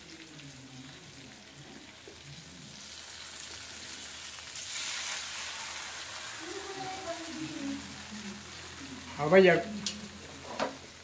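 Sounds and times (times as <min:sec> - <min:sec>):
fish sizzling in oil: 0:00.0 - 0:11.0.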